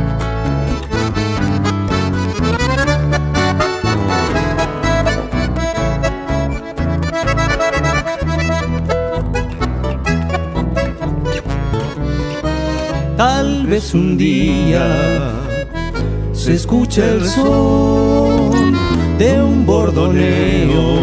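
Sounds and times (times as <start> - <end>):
piano accordion melody: 0.0 - 20.1
acoustic bass guitar: 0.0 - 21.0
strummed acoustic guitar: 0.0 - 21.0.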